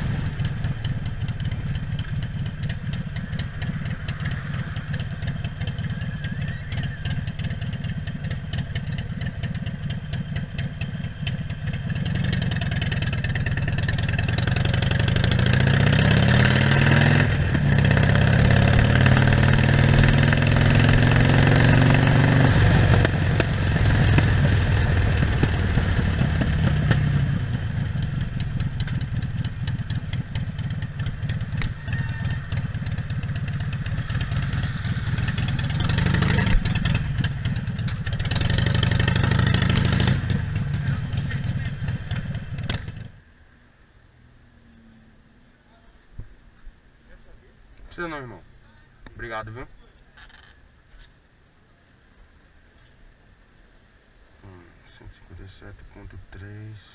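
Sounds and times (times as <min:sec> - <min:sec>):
motorcycle engine idling: 0:00.0 - 0:15.6, 0:17.4 - 0:43.2.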